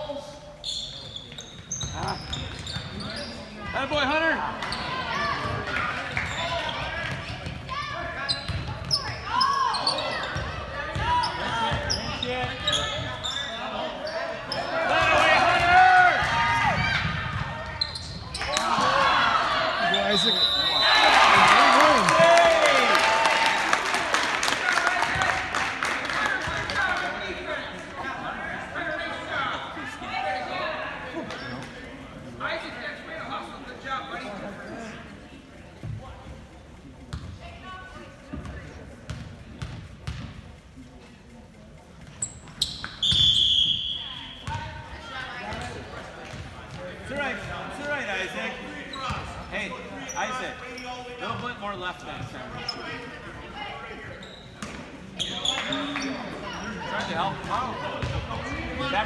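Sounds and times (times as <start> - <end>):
sneakers squeaking: 0.5 - 19.0, 37.1 - 40.6, 41.8 - 47.5, 48.5 - 59.0
referee's whistle: 19.9 - 21.2, 42.6 - 44.4.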